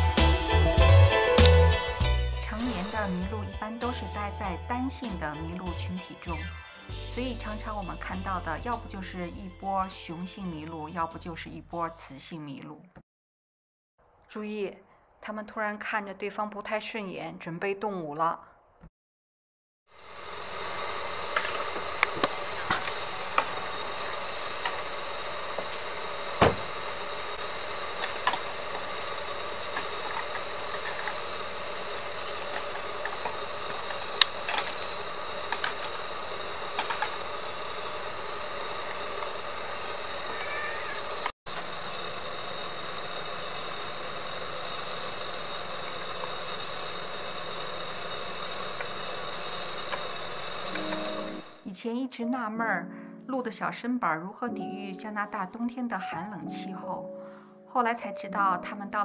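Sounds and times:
vehicle idling hum: 20.1 - 51.6.

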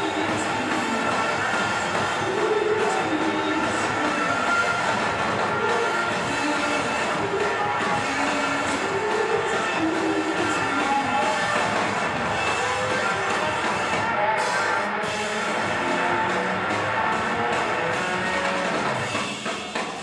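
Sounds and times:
drum kit: 0.0 - 20.0
electric guitar: 0.0 - 20.0.

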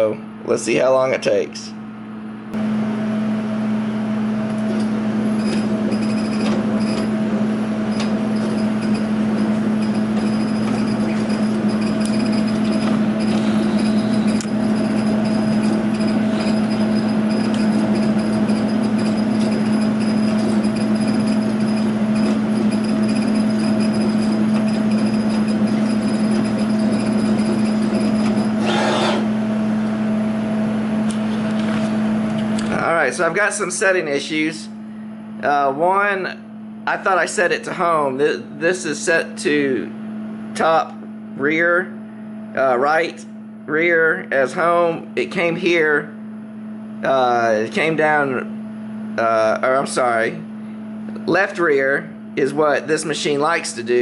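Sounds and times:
fan and pump humming: 0.0 - 54.0
laser head whirring: 4.5 - 29.4.

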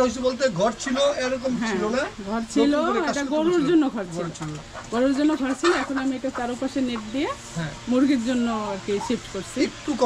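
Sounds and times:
chickens clucking and crooning: 0.8 - 10.0.

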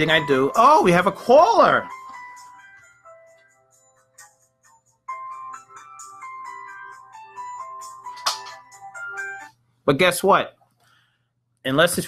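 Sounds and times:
phone ringtone: 1.8 - 9.5.

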